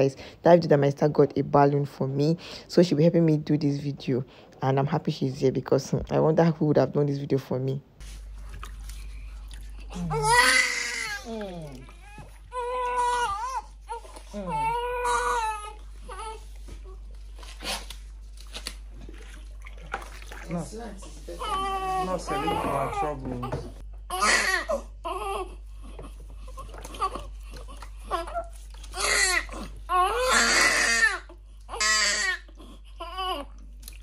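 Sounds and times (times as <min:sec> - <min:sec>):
baby crying: 0:09.9 - 0:16.5, 0:21.4 - 0:25.6, 0:26.5 - 0:33.5.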